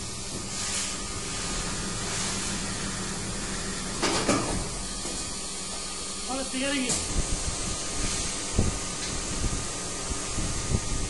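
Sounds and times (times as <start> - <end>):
factory machinery humming and hissing: 0.0 - 11.0.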